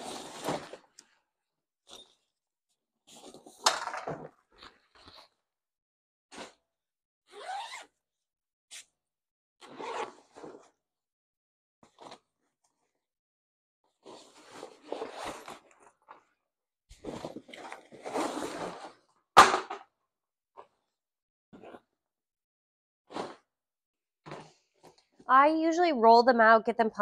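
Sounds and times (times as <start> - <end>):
bag rustling and sliding: 0.0 - 0.8
backpack zipper opening: 7.3 - 8.0, 9.6 - 10.8, 23.1 - 23.5.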